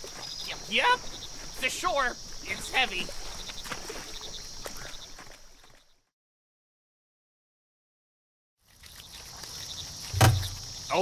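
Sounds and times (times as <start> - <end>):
crickets chirping: 0.0 - 5.9, 8.7 - 11.0.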